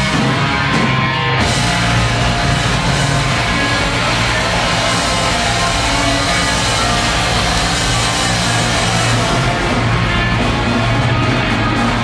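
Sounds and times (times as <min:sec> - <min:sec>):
death metal band playing live: 0:00.0 - 0:12.0.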